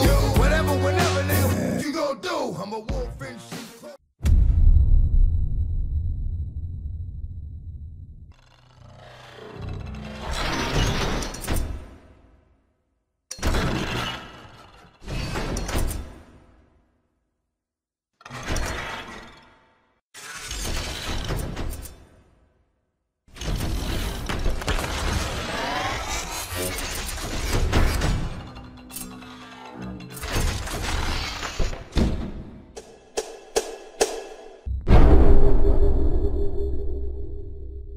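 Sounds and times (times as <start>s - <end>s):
deep rumble: 4.3s - 8.3s, 34.7s - 37.9s
machine parts whirring and ratcheting: 23.4s - 31.8s
heavy hit: 34.7s - 36.4s.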